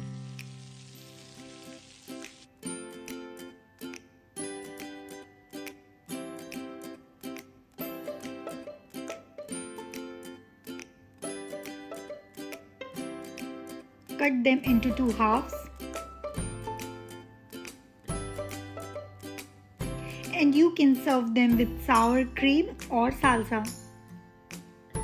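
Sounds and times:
food sizzling in pan: 0:00.0 - 0:02.6
plucked string instrument music: 0:02.6 - 0:20.7.

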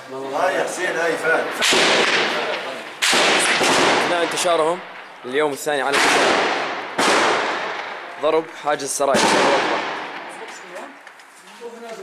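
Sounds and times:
loud gunshots echoing: 0:00.9 - 0:10.5.

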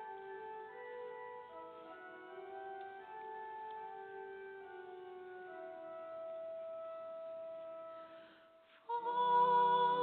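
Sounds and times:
organ holding long note: 0:00.0 - 0:08.2.

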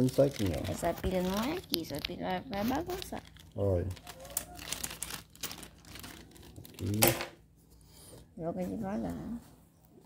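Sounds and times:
plastic bag crinkling: 0:00.0 - 0:07.2.

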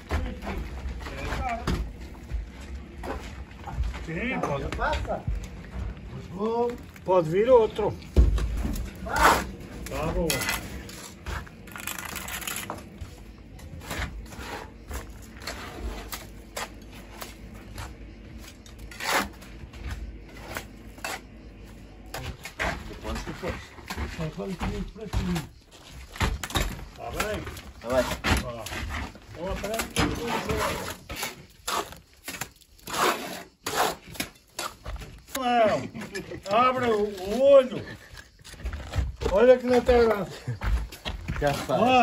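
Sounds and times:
workers speaking: 0:22.8 - 0:25.5, 0:35.3 - 0:38.6, 0:39.2 - 0:42.0.

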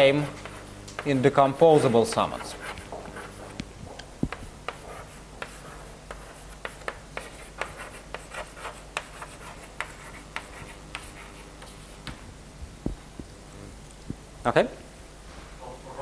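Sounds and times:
chalk tapping and scratching: 0:00.0 - 0:03.6, 0:04.2 - 0:12.2.

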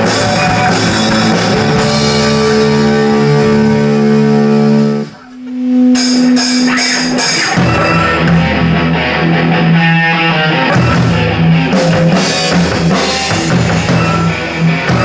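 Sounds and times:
distorted electric guitar: 0:00.0 - 0:15.0
live rock band: 0:00.0 - 0:15.0
cymbal strokes: 0:01.0 - 0:08.4.

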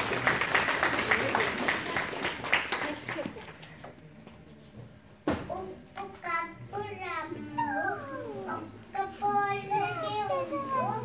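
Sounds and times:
girl reciting into a microphone: 0:05.5 - 0:11.0.

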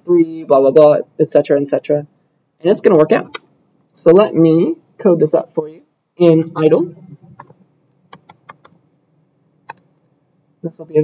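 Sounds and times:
computer keyboard keystrokes: 0:07.3 - 0:08.8.

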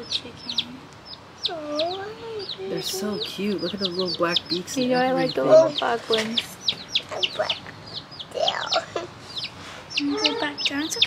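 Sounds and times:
baby chicks peeping: 0:00.0 - 0:11.0.

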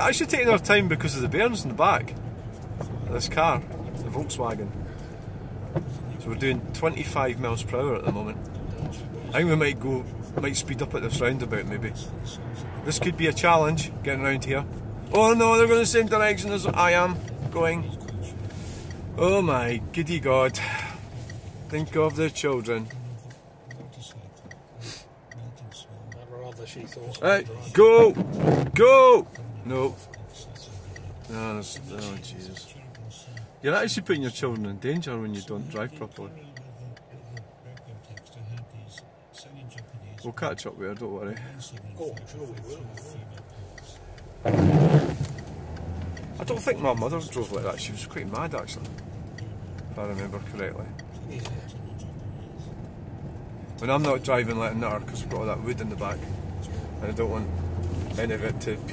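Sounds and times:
car engine hum: 0:00.0 - 0:58.9
turn indicator ticking: 0:00.0 - 0:58.9
person speaking: 0:05.8 - 0:45.5, 0:46.2 - 0:52.8
short hiss: 0:24.8 - 0:25.1.

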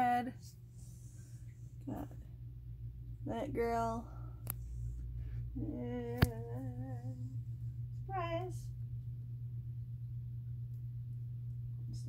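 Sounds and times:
person humming a tune: 0:05.6 - 0:07.4.

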